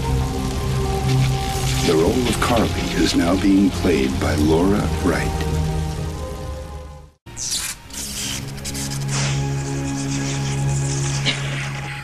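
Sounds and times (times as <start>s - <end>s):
background score with held tones: 0.0s - 12.0s
burst of hissing noise: 7.3s - 11.3s.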